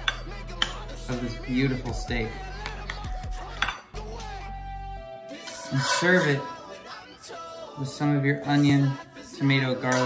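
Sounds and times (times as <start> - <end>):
knife scraping a plate: 5.4 - 6.5.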